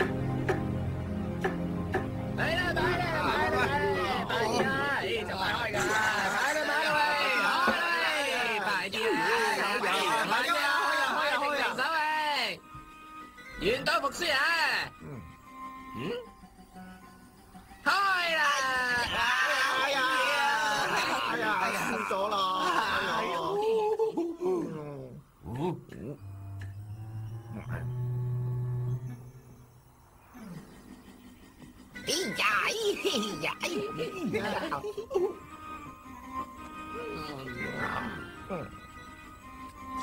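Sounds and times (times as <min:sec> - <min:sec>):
background music: 0:00.0 - 0:40.0.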